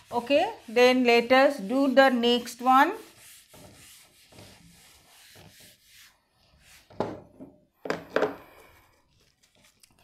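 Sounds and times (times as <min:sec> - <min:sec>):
eraser rubbing on chalkboard: 0:00.0 - 0:07.0.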